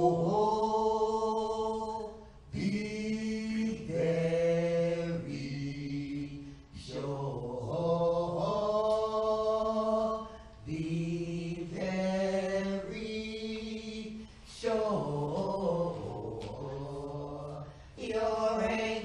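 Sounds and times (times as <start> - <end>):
person singing slow sacred song: 0.0 - 19.0.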